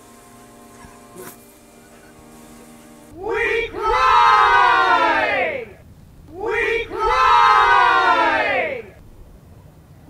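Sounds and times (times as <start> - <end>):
men yelling together: 3.2 - 9.0.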